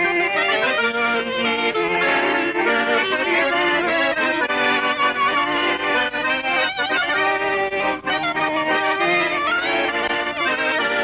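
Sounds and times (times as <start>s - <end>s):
accordion playing a tune: 0.0s - 11.0s.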